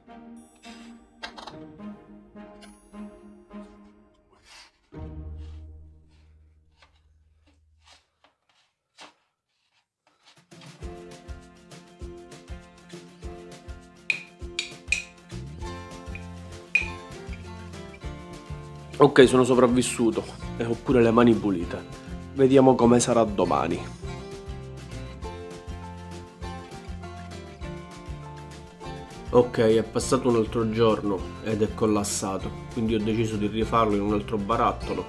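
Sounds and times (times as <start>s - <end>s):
background music with steady beat: 10.5s - 35.0s.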